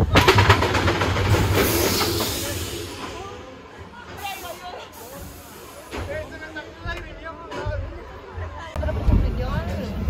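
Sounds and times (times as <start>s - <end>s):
roller coaster wheels rumbling: 0.0s - 10.0s
hiss: 1.4s - 6.7s.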